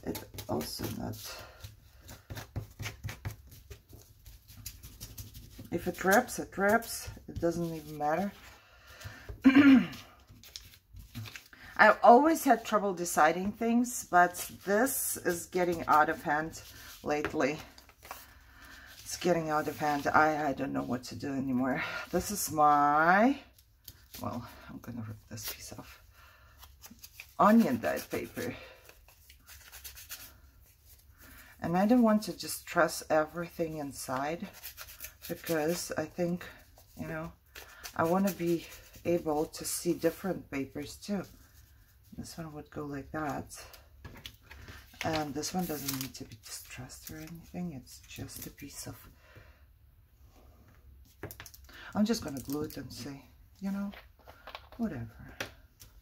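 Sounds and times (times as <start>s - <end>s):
paper strip rustling: 0.0s - 8.5s, 9.9s - 11.5s, 44.2s - 47.5s.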